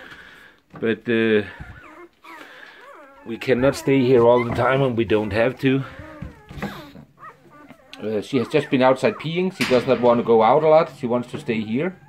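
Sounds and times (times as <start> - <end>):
puppies whimpering: 1.0 - 12.0
high squeaks of puppies: 1.2 - 12.0.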